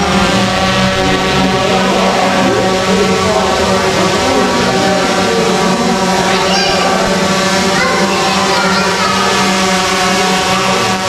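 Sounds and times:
drone propellers buzzing: 0.0s - 11.0s.

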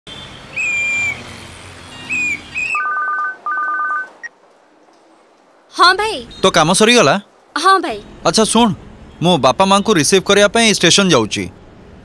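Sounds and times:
street traffic noise: 0.1s - 12.0s
shrill whistle blasts: 0.5s - 1.2s, 2.1s - 4.1s
mobile phone ringing: 2.8s - 4.3s.

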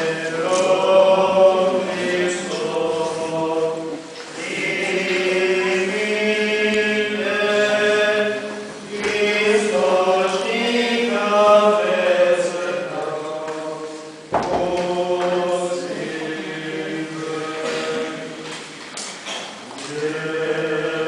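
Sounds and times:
voices chanting: 0.0s - 18.7s, 19.8s - 21.0s.

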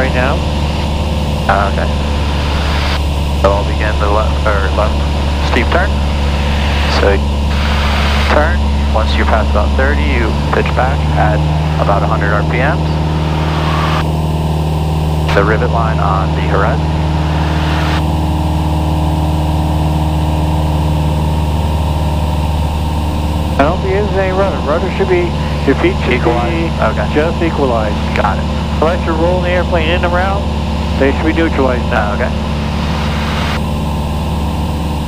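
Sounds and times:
propeller plane engine drone: 0.0s - 35.0s.

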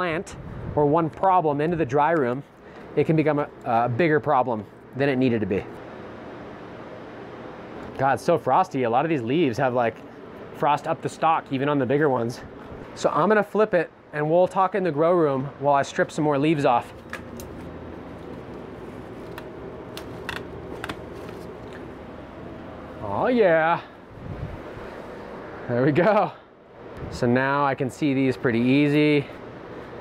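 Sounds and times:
fan blowing air: 0.0s - 30.0s
steady machine hum: 0.0s - 30.0s
leaf stems snapping and rustling: 17.0s - 21.9s.

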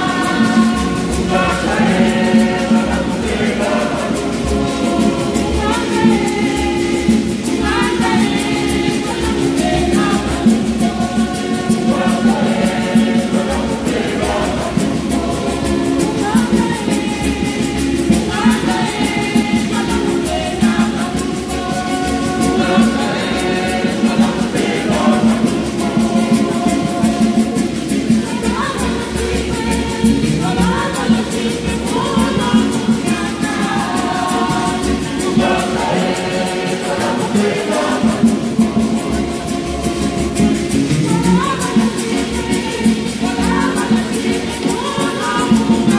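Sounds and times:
steady rhythmic beat: 0.0s - 45.9s
women's choir singing a hymn: 0.0s - 45.9s.

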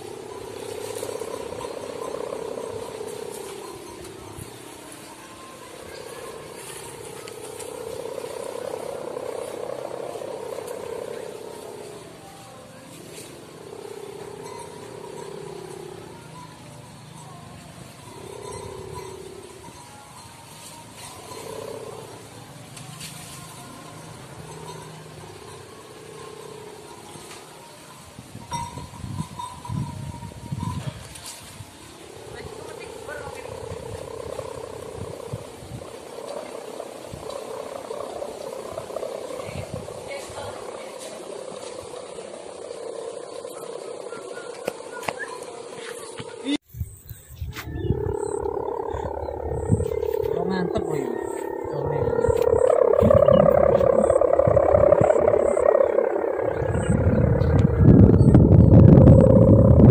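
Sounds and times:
kite hummer droning: 0.0s - 59.9s
wind buffeting microphone: 28.2s - 36.2s, 37.0s - 40.8s, 46.7s - 59.9s.

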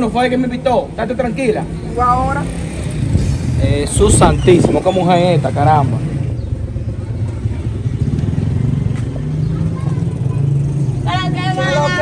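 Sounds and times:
engine rumbling: 0.0s - 12.0s
faint voices: 8.9s - 12.0s.

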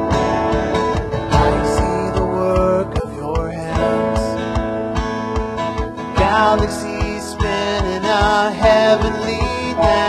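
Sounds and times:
bass: 0.0s - 10.0s
kick-drum beat: 0.0s - 10.0s
strummed guitars: 0.0s - 10.0s
person singing: 1.1s - 4.4s, 6.1s - 10.0s.

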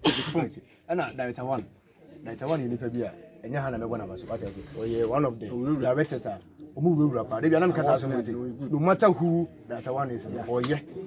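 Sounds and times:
man speaking: 0.1s - 11.0s.

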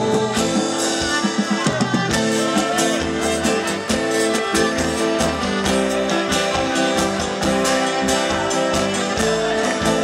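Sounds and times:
drum kit steady beat: 0.0s - 10.0s
strummed acoustic guitar: 0.0s - 10.0s.

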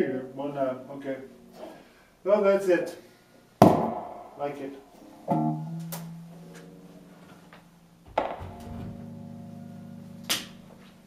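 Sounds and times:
open guitar strings ringing: 4.4s - 11.0s
electric guitar chord through amp: 4.8s - 11.0s
guitar set down thunk: 8.1s - 9.1s.

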